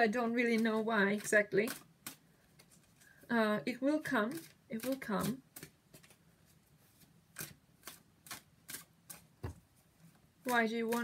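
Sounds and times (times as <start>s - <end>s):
cards slapping while shuffled: 4.4s - 6.2s, 7.0s - 9.6s.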